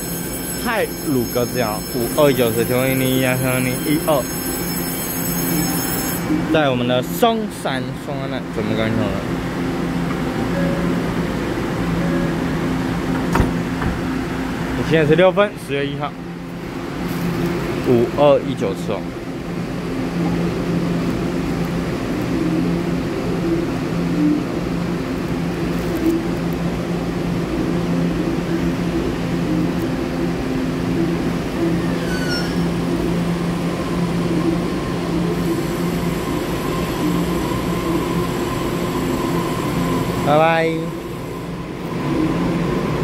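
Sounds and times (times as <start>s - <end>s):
train electrical whine: 0.0s - 43.0s
train equipment low hum: 0.0s - 43.0s
brief falling squeal: 31.8s - 33.0s.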